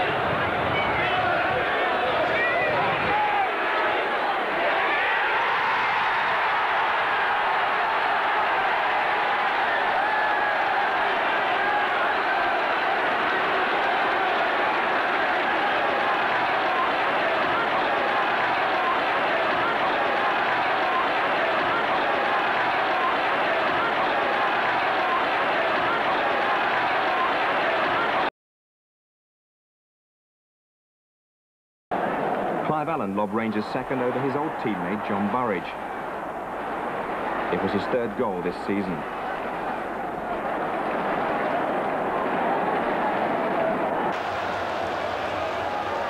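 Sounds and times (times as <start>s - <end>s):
stadium crowd cheering: 0.0s - 28.3s, 31.9s - 46.0s.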